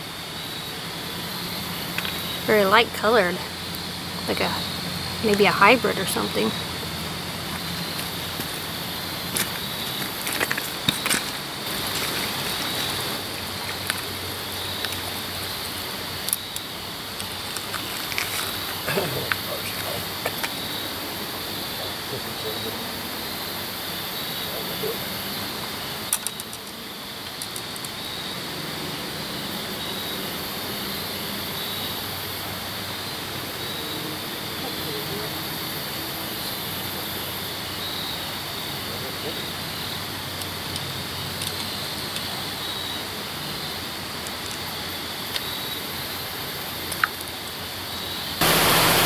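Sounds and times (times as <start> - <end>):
river water rushing: 48.4 - 49.0.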